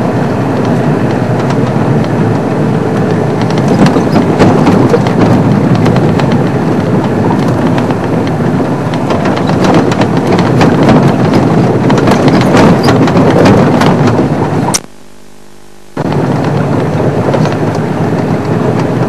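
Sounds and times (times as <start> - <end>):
vehicle rumbling on dirt track: 0.0 - 19.0
knocks and rattles: 0.5 - 14.7, 16.0 - 19.0.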